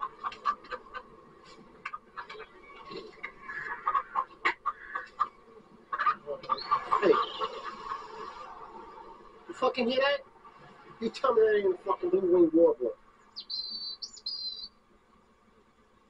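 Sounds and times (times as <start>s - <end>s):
men laughing: 0.0s - 1.1s, 6.0s - 8.9s.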